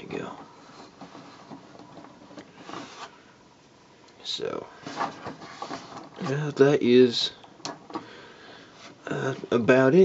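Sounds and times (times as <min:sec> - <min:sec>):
plastic parts clicking and rubbing: 0:00.0 - 0:03.2, 0:04.8 - 0:06.6.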